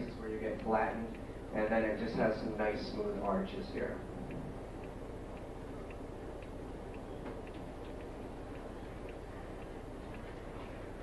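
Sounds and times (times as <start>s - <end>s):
faint regular ticking: 0.0s - 11.0s
low room hum: 0.0s - 11.0s.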